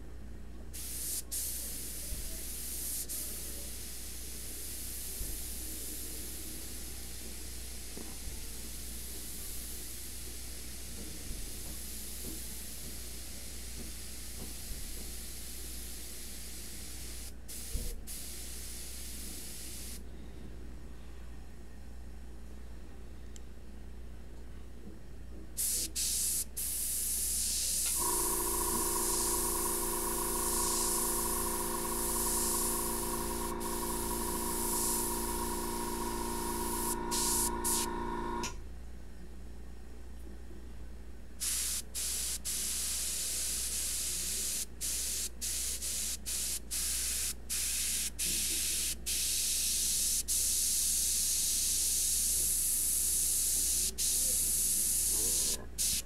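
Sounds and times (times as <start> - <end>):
airbrush spraying: 0.8 - 6.0, 15.2 - 20.0, 25.6 - 38.5, 41.4 - 56.0
steady hum: 27.8 - 38.7.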